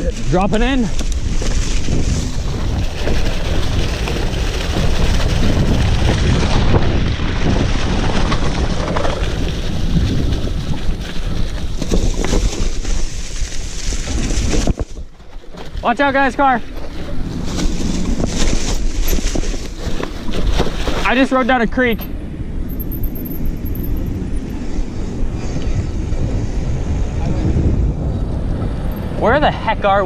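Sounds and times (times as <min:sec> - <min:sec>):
bike knocking and rattling: 0:00.0 - 0:24.7
bike tyres on dirt trail: 0:00.0 - 0:30.0
wind buffeting microphone: 0:00.0 - 0:30.0.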